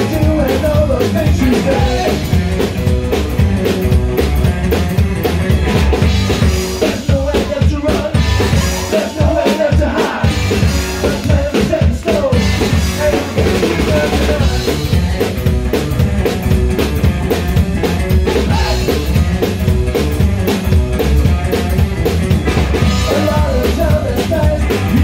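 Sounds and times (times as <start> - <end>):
drum kit: 0.0 - 25.0
live rock band playing: 0.0 - 25.0.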